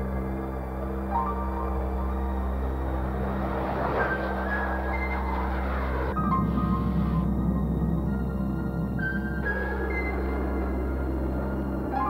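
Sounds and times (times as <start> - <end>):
droning music score: 0.0 - 12.0
jet engine rushing at takeoff: 1.3 - 9.9.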